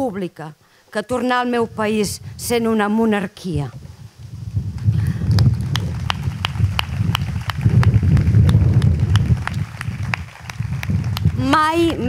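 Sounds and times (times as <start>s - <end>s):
audience applauding: 4.8s - 12.0s
sharp evenly spaced claps: 5.3s - 12.0s.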